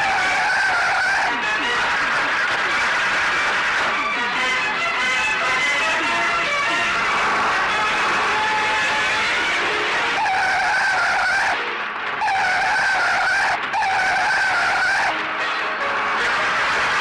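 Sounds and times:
tyres squealing: 0.0s - 2.5s, 10.0s - 11.6s, 12.2s - 15.2s
car engine: 0.0s - 17.0s.

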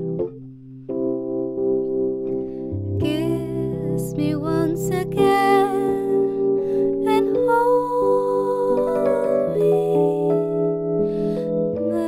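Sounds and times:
keyboard sustained chords: 0.0s - 12.0s
woman singing: 3.0s - 10.6s, 11.8s - 12.0s.

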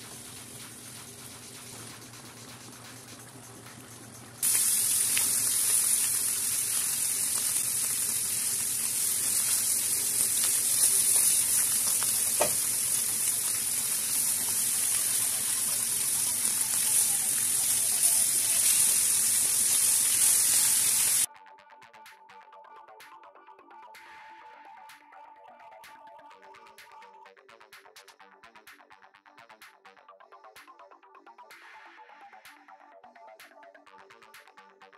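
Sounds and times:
curry sizzling in a frying pan: 0.0s - 21.3s
spatula stirring in pan: 4.0s - 20.3s.

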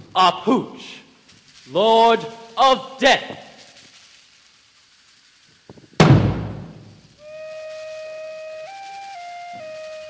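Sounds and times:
deep drum boom: 6.0s - 6.9s
held wind instrument note: 7.2s - 10.0s.

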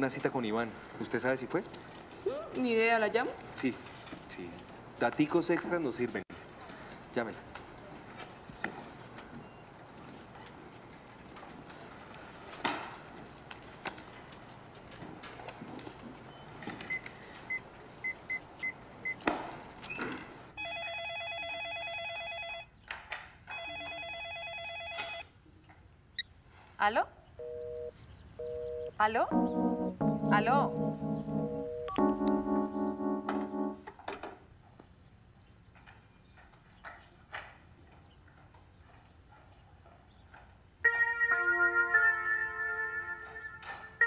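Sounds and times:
telephone ringing: 20.6s - 22.7s, 23.5s - 25.2s, 27.4s - 33.8s
telephone keypad beeps: 27.4s - 29.0s
short low electronic tones: 28.4s - 33.8s.

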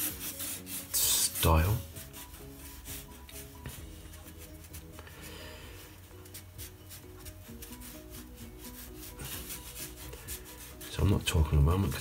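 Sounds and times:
marker scratching on paper: 0.0s - 5.2s, 6.0s - 11.2s
soft background music: 0.0s - 12.0s.

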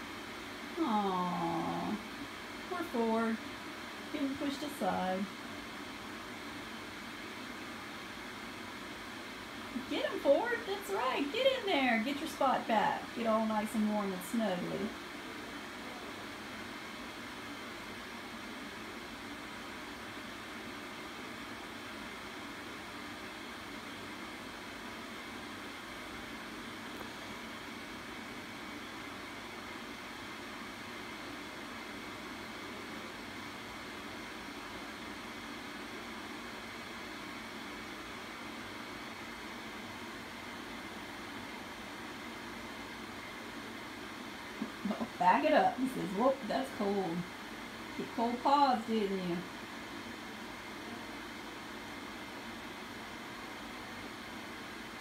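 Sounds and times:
background hiss: 0.0s - 55.0s
faint hum: 0.0s - 55.0s.

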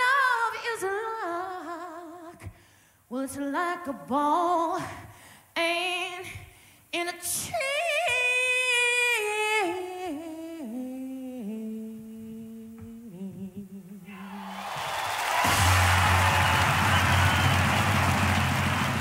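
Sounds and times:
woman singing blues: 0.0s - 14.2s
crowd cheering and applause: 14.1s - 19.0s.

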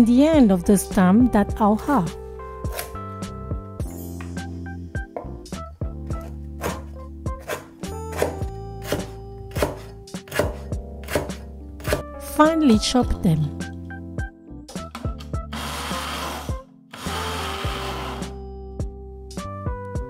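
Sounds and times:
background music: 0.0s - 20.0s
cleaver chopping on wooden board: 6.2s - 12.1s.

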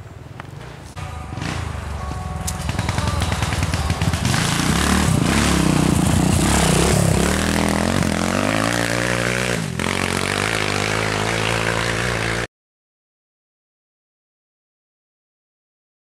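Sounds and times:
dirt bike engine revving: 2.5s - 12.5s.

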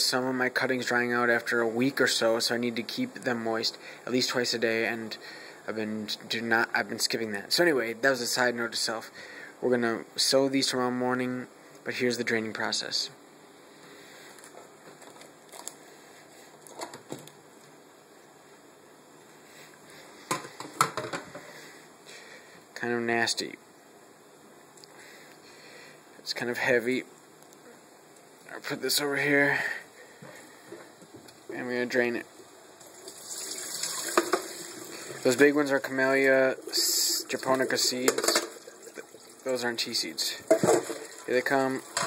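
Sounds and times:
plastic bag crinkling: 14.4s - 15.8s
water pouring into a colander: 32.8s - 35.4s, 36.2s - 39.6s, 40.7s - 42.0s.

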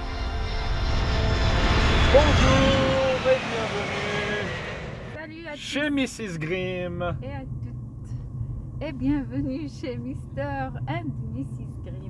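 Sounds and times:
jet airliner flying past: 0.0s - 5.9s.

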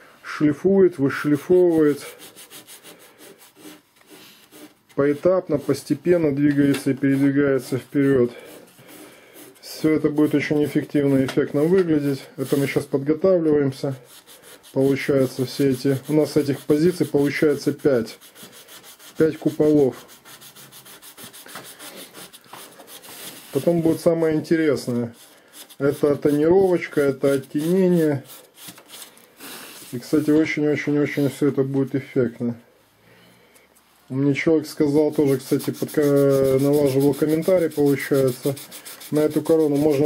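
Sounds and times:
hand sanding wood: 1.4s - 11.0s, 12.0s - 12.9s, 13.8s - 31.4s, 34.8s - 40.0s.

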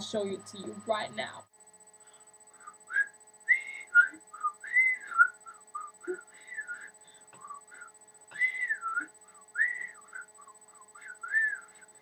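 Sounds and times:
woman whistling a tune: 2.9s - 7.8s, 8.4s - 11.7s.

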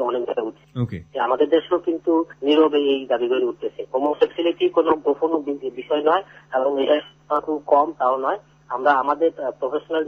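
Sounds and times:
faint low hum: 0.0s - 10.0s
person talking: 0.8s - 1.3s.

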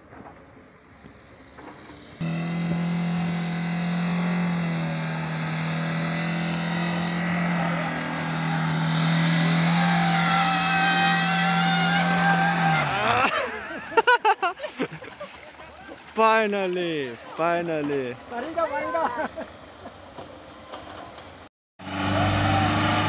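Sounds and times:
suv engine at high revs: 2.2s - 14.1s, 21.8s - 23.0s.

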